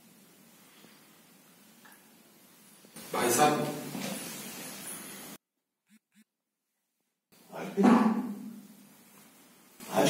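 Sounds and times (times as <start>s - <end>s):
room noise: 0.0s - 6.2s, 6.8s - 10.0s.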